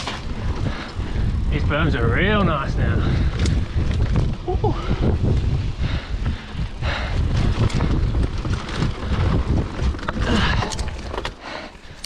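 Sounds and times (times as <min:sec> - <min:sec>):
bike rattling over bumps: 0:00.0 - 0:12.0
knobby tyres rolling on dirt: 0:00.0 - 0:12.0
wind buffeting microphone: 0:00.0 - 0:12.0.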